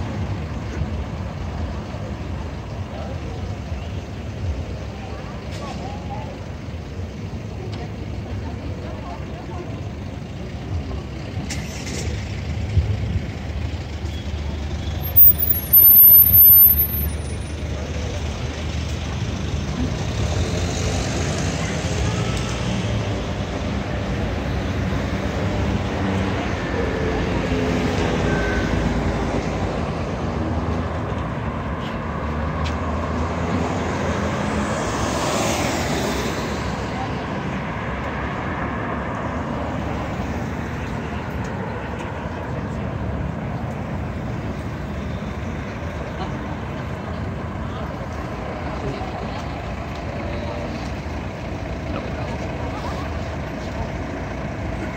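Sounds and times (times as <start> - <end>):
car engines idling: 0.0 - 27.4, 36.5 - 54.9
cars moving off: 0.0 - 54.9.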